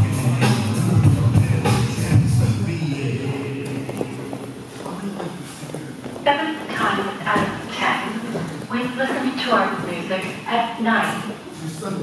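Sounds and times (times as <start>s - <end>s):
person speaking: 2.8s - 12.0s.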